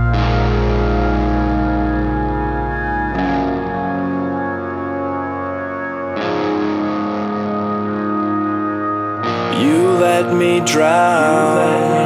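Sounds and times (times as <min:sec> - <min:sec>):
electric guitar chords ringing: 0:00.0 - 0:12.0.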